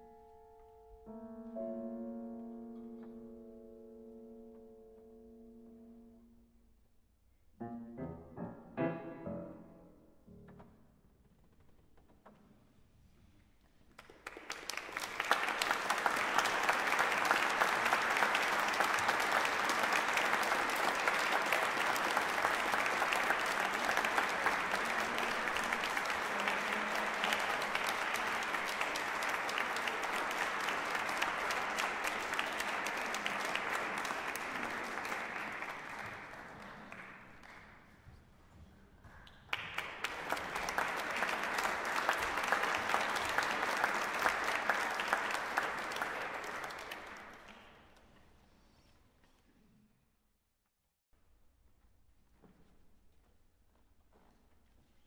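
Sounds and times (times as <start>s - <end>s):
audience applauding: 14.0s - 38.0s, 39.1s - 48.0s.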